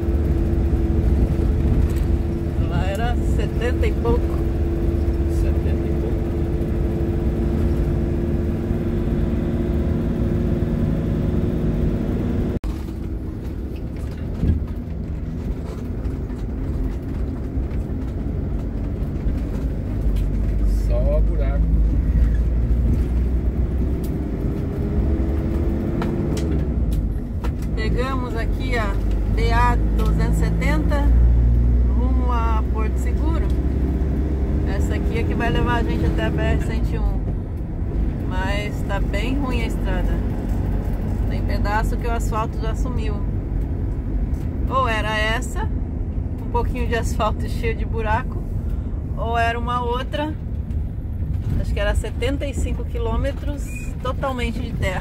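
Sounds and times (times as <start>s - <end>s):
engine drone inside vehicle: 0.0s - 55.0s.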